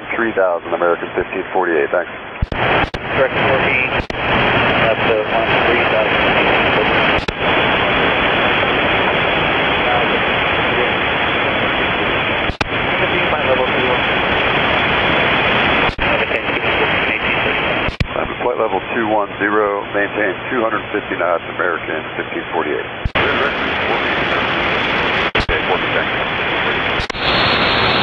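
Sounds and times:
faint radio voices: 0.0 - 27.5
radio static hiss: 0.0 - 28.0
radio transmission clicks: 2.4 - 3.1, 3.9 - 4.2, 7.1 - 7.4, 12.4 - 12.8, 15.8 - 16.1, 17.8 - 18.3, 25.2 - 25.7, 26.9 - 27.2.

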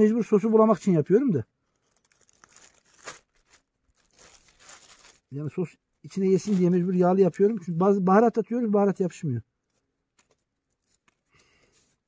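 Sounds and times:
plastic bag crinkling: 1.6 - 5.4, 6.2 - 7.0.

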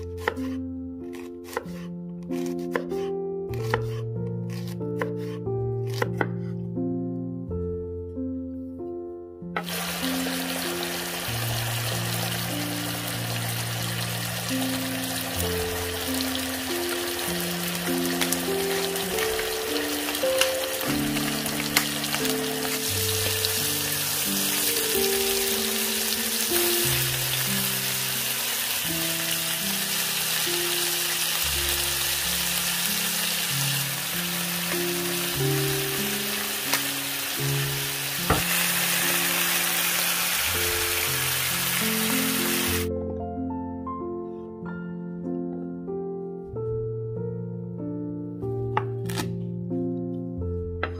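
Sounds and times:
background music: 0.0 - 50.9
meat sizzling in a pan: 9.6 - 42.9.

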